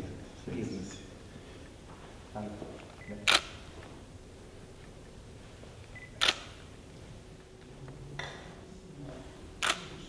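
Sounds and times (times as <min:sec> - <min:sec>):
camera shutter click: 0:03.0 - 0:03.6, 0:06.0 - 0:06.6, 0:09.6 - 0:09.9.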